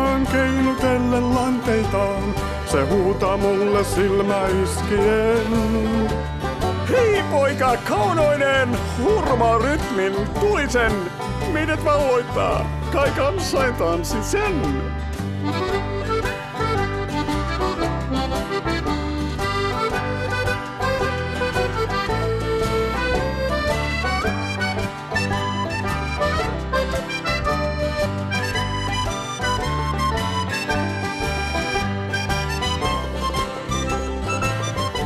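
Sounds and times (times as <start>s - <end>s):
accordion playing melody: 0.0s - 35.0s
bass line and rhythm accompaniment: 0.0s - 35.0s.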